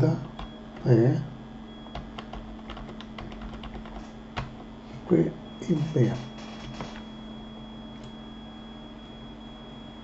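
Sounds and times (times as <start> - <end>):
faint steady hum: 0.0 - 10.0
keyboard and mouse clicks: 1.9 - 4.5.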